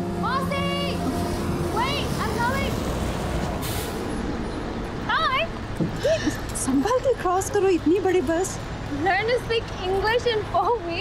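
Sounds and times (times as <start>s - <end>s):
passing vehicles rumble: 0.0s - 11.0s.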